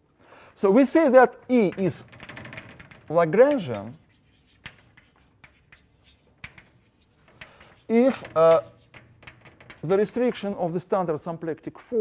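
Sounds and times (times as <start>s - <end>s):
chalk tapping on blackboard: 1.6s - 10.6s
chalk scratching on blackboard: 2.9s - 10.3s.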